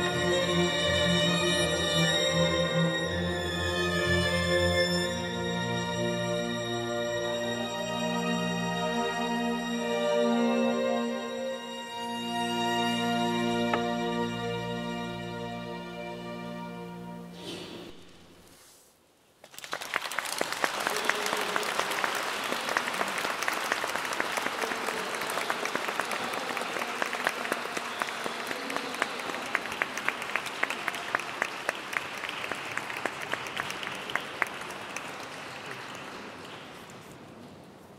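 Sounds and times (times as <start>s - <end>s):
audience applauding: 19.4s - 37.1s.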